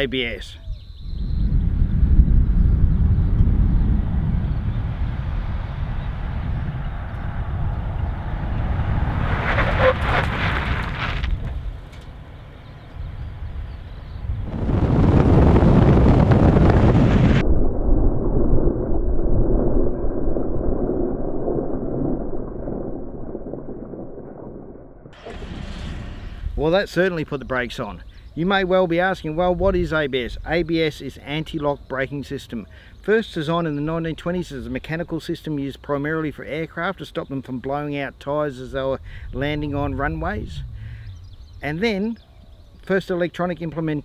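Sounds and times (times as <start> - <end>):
tyre road and wind noise: 0.0 - 32.0, 32.6 - 44.0
car braking hard on asphalt: 6.9 - 11.7.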